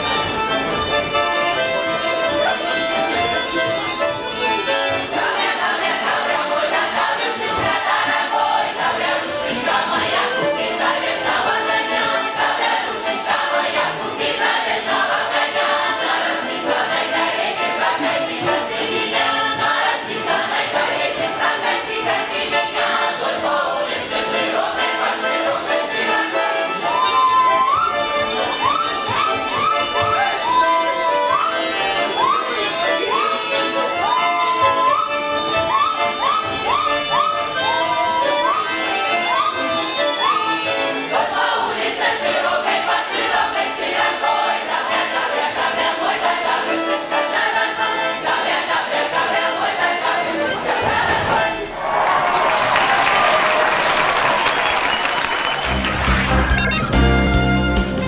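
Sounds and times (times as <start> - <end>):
choir singing a folk song: 0.0 - 51.8.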